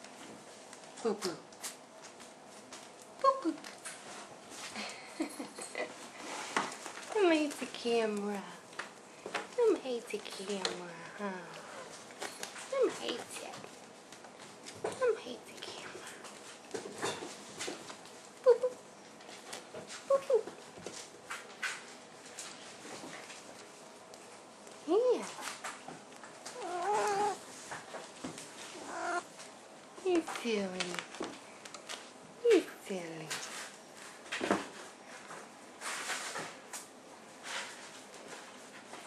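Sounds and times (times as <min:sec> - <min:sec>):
cat meowing: 0:26.6 - 0:27.4, 0:28.7 - 0:29.3.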